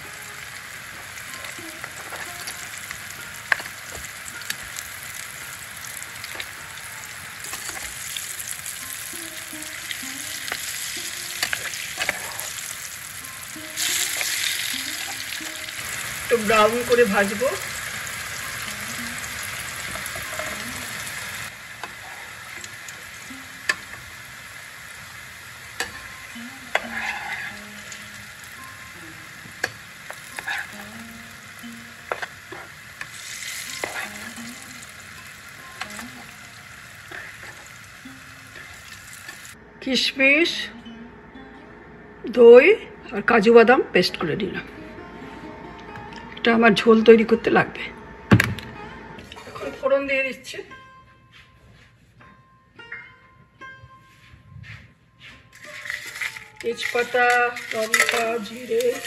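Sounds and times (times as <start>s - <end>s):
food sizzling in hot oil: 0.0s - 39.6s, 55.5s - 59.0s
utensil clicking against pan: 55.6s - 59.0s.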